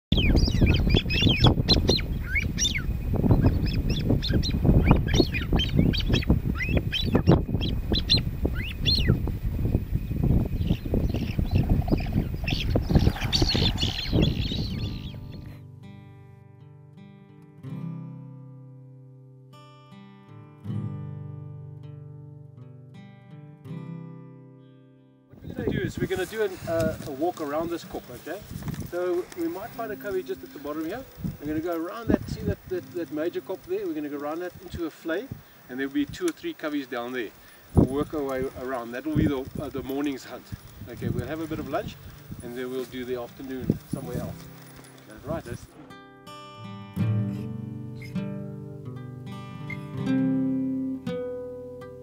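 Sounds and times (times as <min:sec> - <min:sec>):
wind noise: 0:00.0 - 0:15.6, 0:25.3 - 0:45.8
birds squealing calls: 0:00.1 - 0:15.6
plucked guitar notes: 0:45.7 - 0:52.0.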